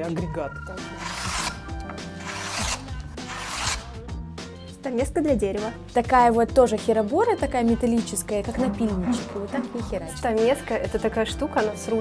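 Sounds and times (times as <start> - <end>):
background music: 0.0 - 12.0
person imitating hand plane strokes: 0.9 - 1.6, 2.2 - 3.9.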